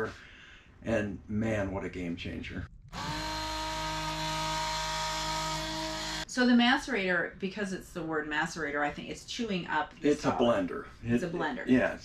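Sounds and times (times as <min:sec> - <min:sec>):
macerator pump motor hum: 0:02.9 - 0:06.2.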